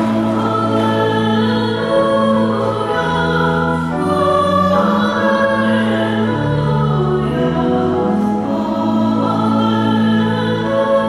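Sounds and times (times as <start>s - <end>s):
keyboard accompaniment: 0.0s - 11.0s
voices singing a hymn: 0.0s - 11.0s.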